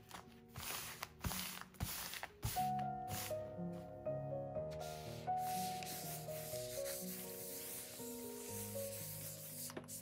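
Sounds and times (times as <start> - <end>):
background music with melody: 0.0 - 10.0
steam iron sliding on paper: 0.5 - 3.4, 4.8 - 10.0.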